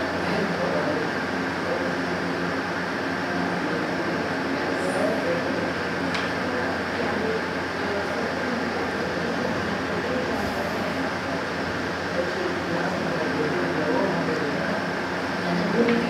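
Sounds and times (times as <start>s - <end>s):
faint indistinct voices: 0.0s - 16.0s
rushing hum: 7.7s - 13.4s.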